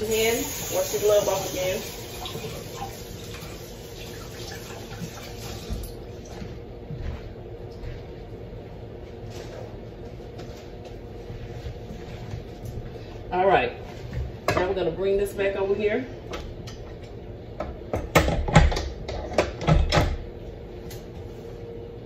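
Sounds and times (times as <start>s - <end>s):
tap running water: 0.0s - 6.4s.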